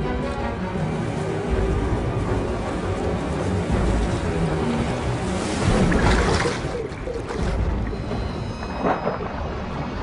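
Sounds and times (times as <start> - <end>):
surf breaking: 2.8 - 10.0.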